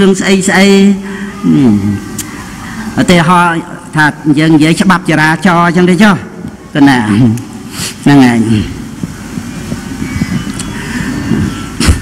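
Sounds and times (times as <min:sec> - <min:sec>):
microphone handling rumble: 0:08.7 - 0:12.0.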